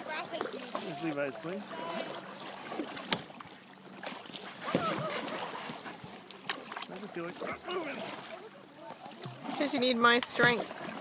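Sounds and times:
paddle water swishing and dripping: 0.0 - 11.0.

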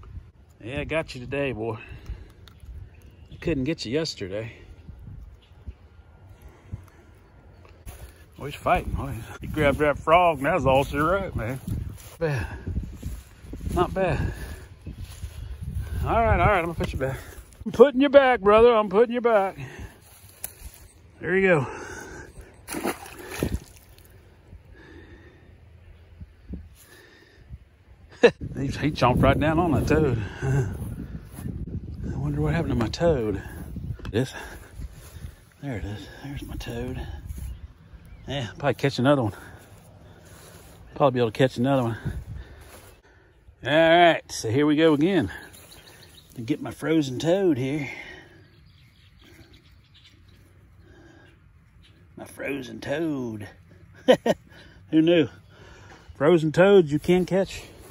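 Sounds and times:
water splashes: 22.6 - 24.1
faint bird calls: 45.3 - 46.4, 48.0 - 52.2.

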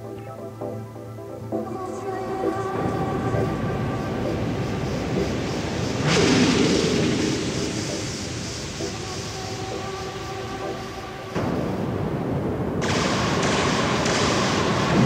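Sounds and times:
electronic dance music: 0.0 - 15.0
synth notes: 0.0 - 15.0
rushing noise surge: 1.0 - 15.0.

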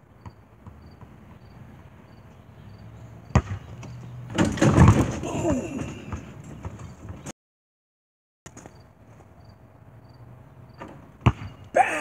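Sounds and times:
basketball bouncing on asphalt: 0.0 - 5.2, 6.0 - 7.3, 10.7 - 11.7.

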